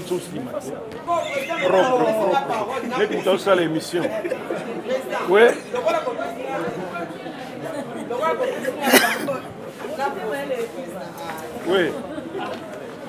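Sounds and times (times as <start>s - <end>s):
people talking and chattering: 0.0s - 13.0s.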